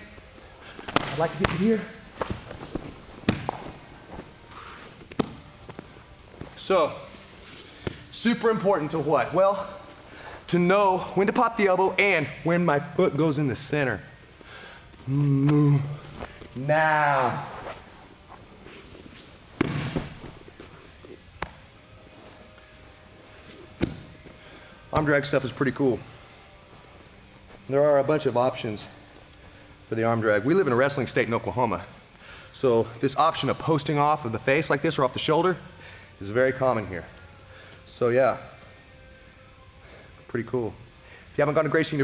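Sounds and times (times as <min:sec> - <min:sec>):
bare feet shuffling on mats: 0:00.1 - 0:08.1, 0:17.3 - 0:29.6
body slapping and thudding on mat: 0:00.9 - 0:01.6, 0:02.2 - 0:03.8, 0:19.5 - 0:20.7
sharp slap on mat: 0:19.6 - 0:20.2
bodies thudding on padded mat: 0:19.6 - 0:20.7.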